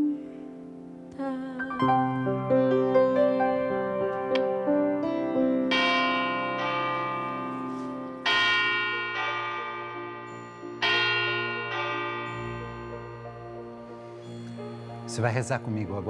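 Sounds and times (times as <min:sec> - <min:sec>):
piano notes: 0:00.0 - 0:16.0
deep bell chimes: 0:05.0 - 0:16.0
soft low drone: 0:08.9 - 0:16.0.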